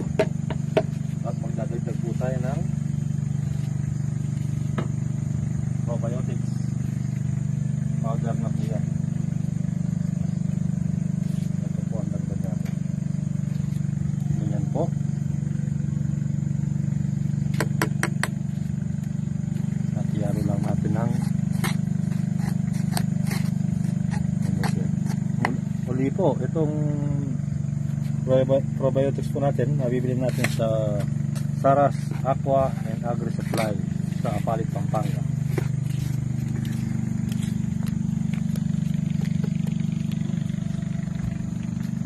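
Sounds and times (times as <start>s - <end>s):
low machine hum: 0.0s - 42.0s.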